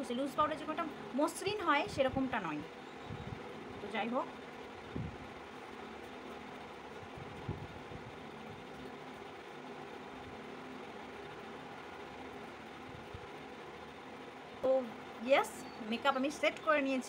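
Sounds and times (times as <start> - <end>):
faint background hum and hiss: 0.0 - 17.0.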